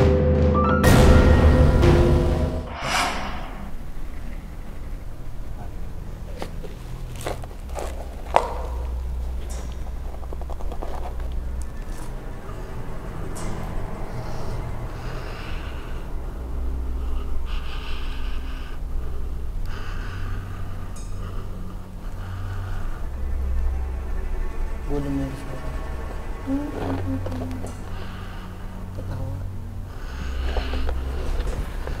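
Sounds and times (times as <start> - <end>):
low hum: 0.0 - 32.0
woman breathing heavily: 2.7 - 24.9, 25.7 - 32.0.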